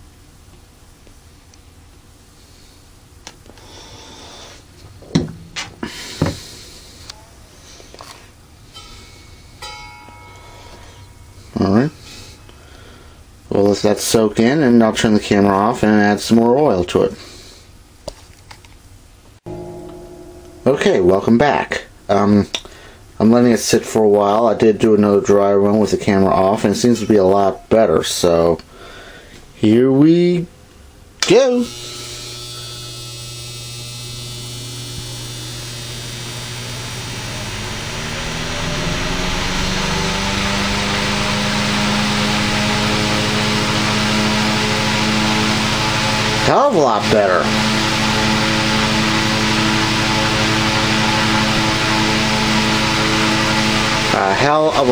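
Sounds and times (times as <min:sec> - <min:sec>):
electric fan whirring: 0:00.0 - 0:17.1, 0:18.4 - 0:28.7, 0:31.1 - 0:54.9
steady hum with overtones: 0:00.0 - 0:28.8, 0:29.5 - 0:54.9
electrical buzz: 0:19.4 - 0:23.0, 0:31.6 - 0:54.9.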